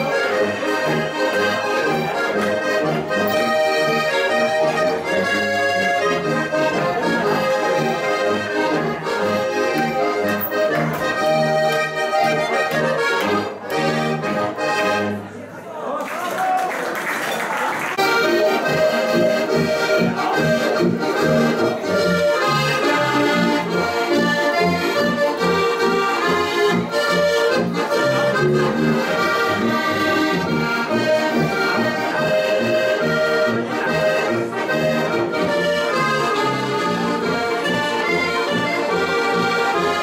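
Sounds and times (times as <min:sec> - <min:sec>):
tuba bass notes: 0:00.0 - 0:15.2, 0:18.0 - 0:40.0
button accordions playing: 0:00.0 - 0:15.3, 0:18.0 - 0:40.0.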